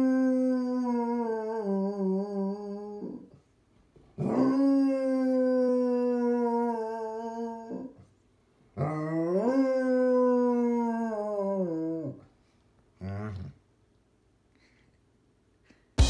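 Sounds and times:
dog howling: 0:00.0 - 0:03.2, 0:04.2 - 0:08.0, 0:08.8 - 0:12.2.

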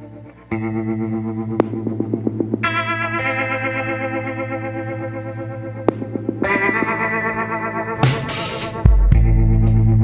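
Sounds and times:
sustained wavering synth chords: 0:00.0 - 0:08.0.

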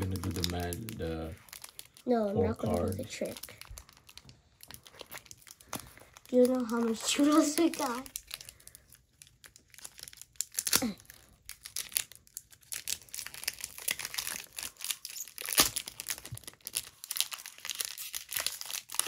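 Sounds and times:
foil wrapper crinkling and tearing: 0:00.0 - 0:19.0.

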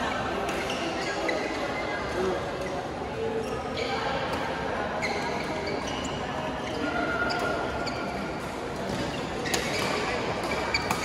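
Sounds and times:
sneakers squeaking: 0:00.4 - 0:02.8, 0:03.4 - 0:11.0.

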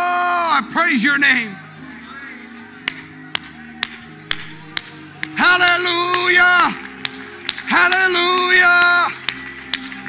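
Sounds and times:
soft sustained music: 0:00.0 - 0:10.0
person clapping hands: 0:02.8 - 0:10.0.

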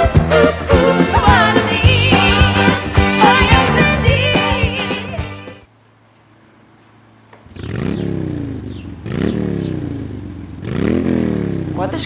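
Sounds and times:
engine revving: 0:07.4 - 0:12.0.

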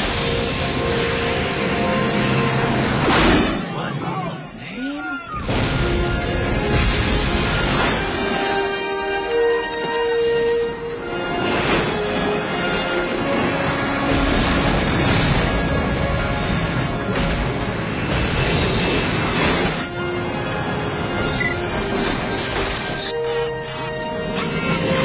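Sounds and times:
film score music: 0:00.0 - 0:25.0
explosions: 0:05.4 - 0:08.2, 0:14.1 - 0:16.5.

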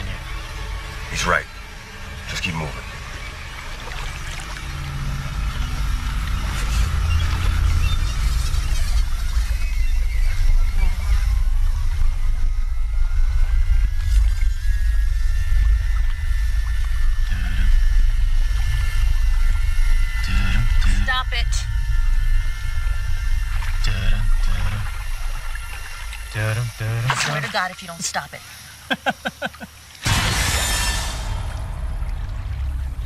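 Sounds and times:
low rumbling suspense drone: 0:00.0 - 0:33.0.

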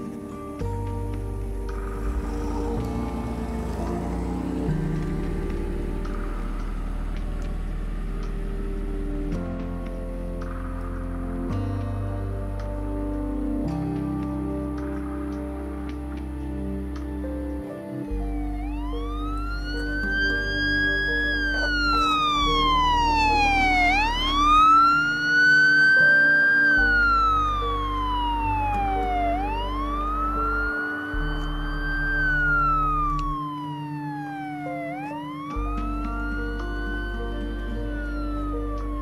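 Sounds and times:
soft music with low notes: 0:00.0 - 0:39.0
police siren wailing: 0:01.8 - 0:08.0, 0:18.1 - 0:39.0.

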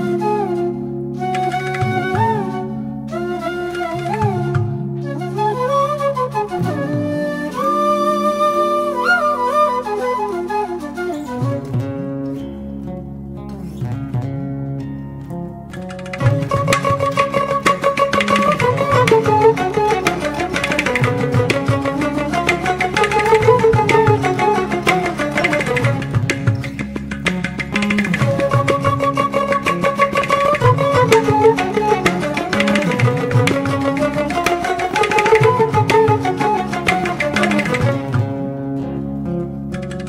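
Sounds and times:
flute-like melody: 0:00.0 - 0:12.6, 0:16.1 - 0:39.0
plucked-string notes: 0:00.0 - 0:40.0.

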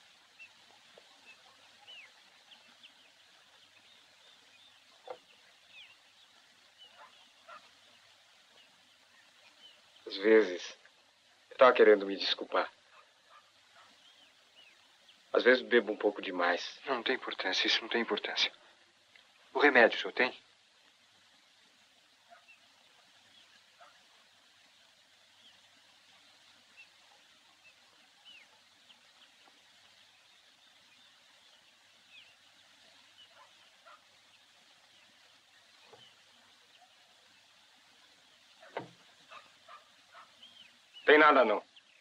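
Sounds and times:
faint bird chirps: 0:00.0 - 0:16.8, 0:19.8 - 0:42.0.

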